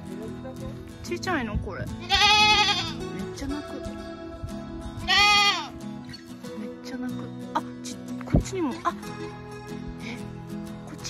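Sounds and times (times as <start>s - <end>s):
goat bleating: 2.0s - 3.0s, 5.0s - 5.8s.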